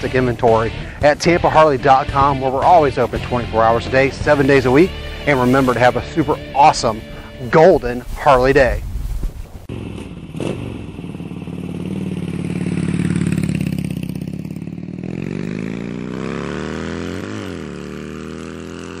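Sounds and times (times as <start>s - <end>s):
motorcycle engine running: 0.0s - 7.4s, 9.7s - 19.0s.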